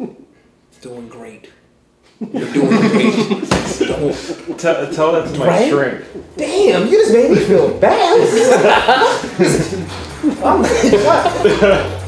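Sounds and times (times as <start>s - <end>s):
men laughing: 2.1s - 5.2s, 7.0s - 12.0s
men talking: 2.3s - 12.0s.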